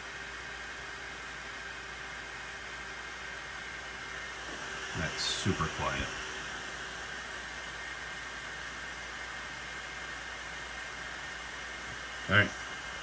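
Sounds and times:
printer fan hissing: 0:03.4 - 0:13.0.

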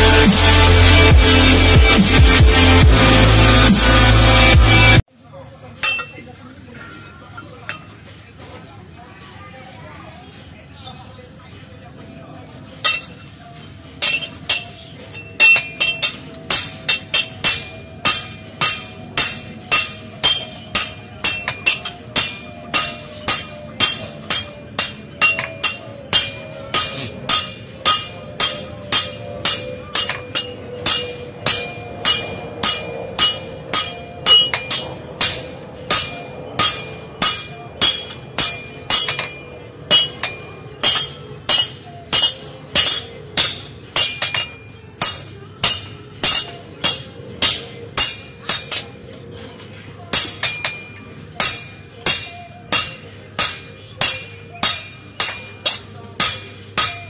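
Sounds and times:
hammer striking metal: 0:05.8 - 0:06.2, 0:12.8 - 0:13.4, 0:14.0 - 0:57.0.

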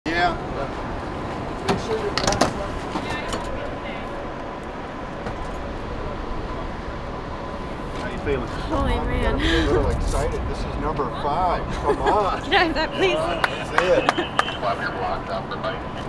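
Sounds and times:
faint steady hum: 0:00.1 - 0:16.0.

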